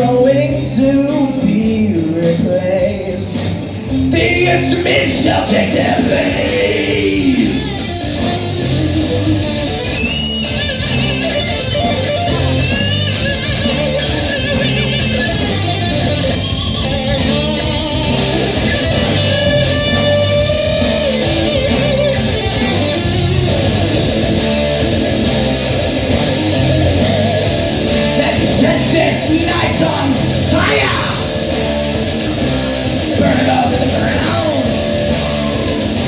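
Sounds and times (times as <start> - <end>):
bass guitar: 0.0 - 36.0
drums: 0.0 - 36.0
electric guitars: 0.0 - 36.0
sliding guitar line: 2.3 - 36.0.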